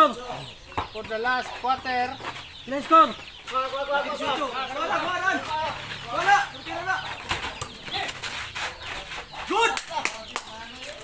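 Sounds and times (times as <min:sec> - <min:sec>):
players calling out: 0:00.0 - 0:11.0.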